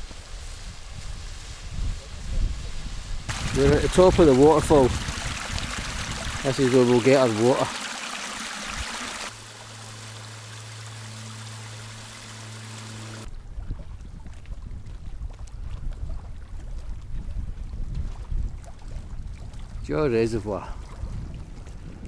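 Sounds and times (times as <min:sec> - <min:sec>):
gusty wind on microphone: 0:00.0 - 0:06.5, 0:13.2 - 0:22.0
water rushing over rocks: 0:03.3 - 0:13.3
low steady hum: 0:09.3 - 0:14.2.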